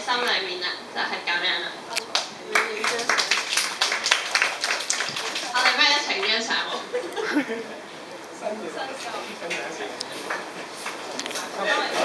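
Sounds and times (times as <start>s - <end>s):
people talking: 0.0s - 4.1s, 5.0s - 10.4s
audience clapping: 2.1s - 6.5s.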